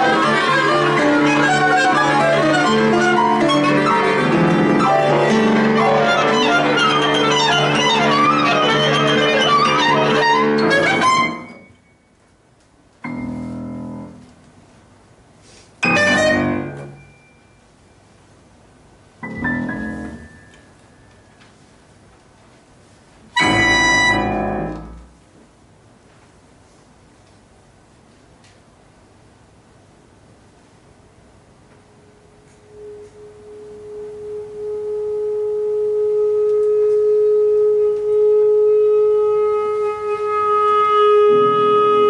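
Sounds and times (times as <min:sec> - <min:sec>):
clarinet long held note: 0:00.0 - 0:11.8, 0:23.4 - 0:25.0, 0:32.5 - 0:42.0
grand piano chord: 0:13.0 - 0:14.3, 0:23.4 - 0:25.2.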